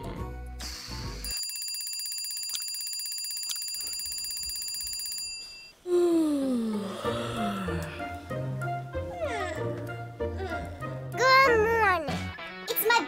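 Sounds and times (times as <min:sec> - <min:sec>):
bell ringing rapidly: 0:01.2 - 0:05.7
person yawning: 0:05.9 - 0:08.1.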